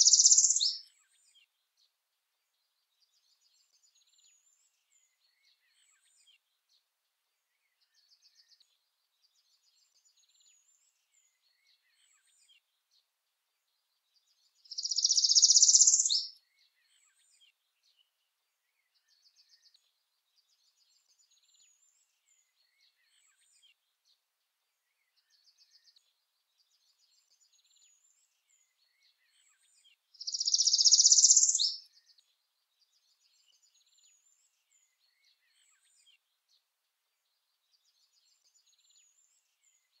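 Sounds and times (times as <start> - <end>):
bird singing buzzy trill: 0.0 - 0.8, 14.7 - 16.3, 30.2 - 31.8
faint high chirps: 0.0 - 0.8, 14.7 - 16.3, 30.2 - 31.9.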